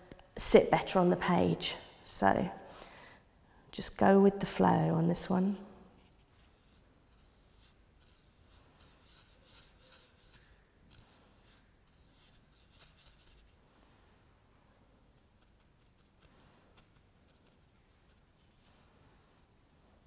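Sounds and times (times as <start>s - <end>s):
paintbrush strokes on paper: 5.9s - 20.0s.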